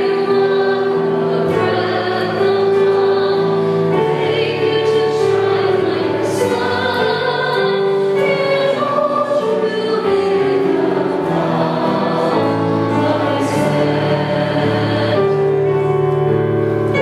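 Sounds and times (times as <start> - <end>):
choir singing a slow hymn: 0.0 - 17.0.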